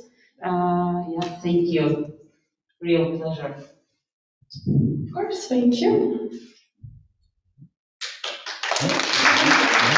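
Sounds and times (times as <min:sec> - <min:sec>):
audience applause: 0:08.0 - 0:09.9.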